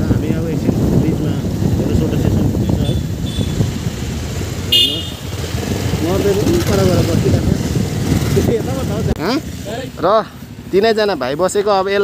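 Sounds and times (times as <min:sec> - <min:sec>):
road noise: 0:00.0 - 0:12.0
motorcycle engine: 0:00.2 - 0:10.1
horn beep: 0:02.6 - 0:03.7, 0:04.7 - 0:05.4.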